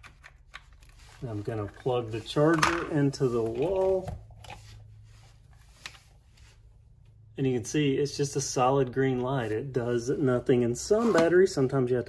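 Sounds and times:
soft rustles: 0.8s - 7.1s.

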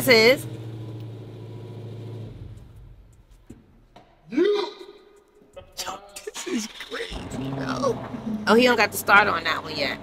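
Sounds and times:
car engine idling: 0.0s - 3.4s.

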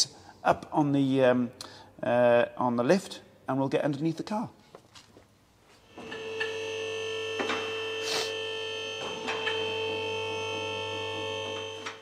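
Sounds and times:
vehicle lift motor humming: 5.8s - 12.0s.

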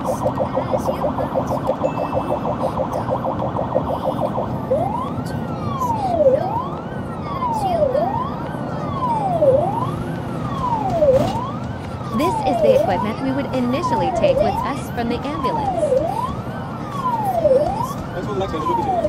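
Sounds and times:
ambulance siren: 0.0s - 19.0s.

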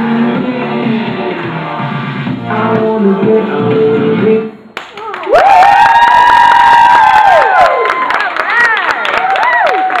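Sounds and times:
people clapping: 4.8s - 10.0s.

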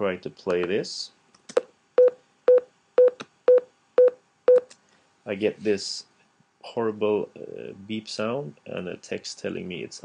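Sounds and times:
short mid-pitched beeps: 2.0s - 4.7s.

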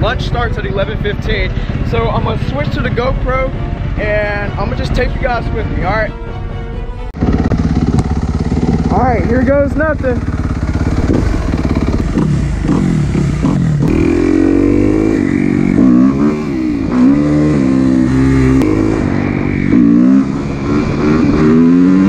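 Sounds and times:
dirt bike accelerating: 7.2s - 22.0s.

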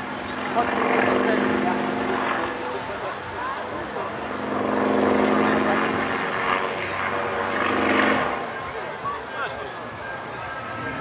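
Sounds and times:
propeller plane engine droning: 0.0s - 11.0s
voices in background: 0.0s - 11.0s.

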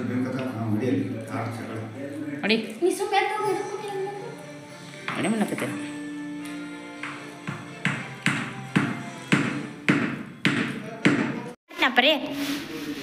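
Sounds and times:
background music: 0.0s - 11.6s.

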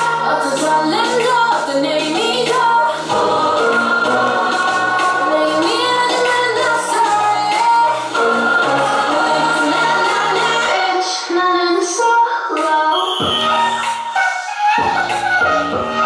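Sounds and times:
synth bass and chords: 0.0s - 11.6s, 13.1s - 16.0s
woman singing: 0.0s - 13.3s.

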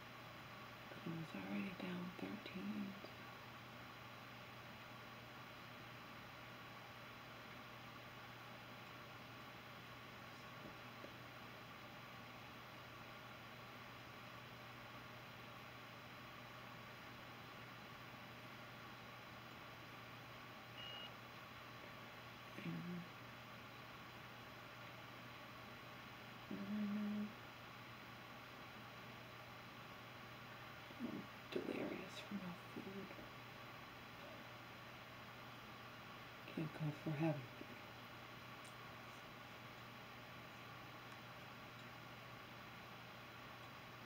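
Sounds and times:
low electrical hum: 0.0s - 44.0s
woman humming and murmuring: 22.5s - 23.1s, 26.5s - 27.4s.

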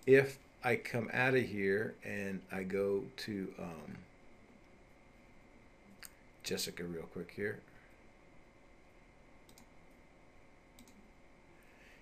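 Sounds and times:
computer mouse clicks: 9.4s - 9.8s, 10.8s - 11.0s.

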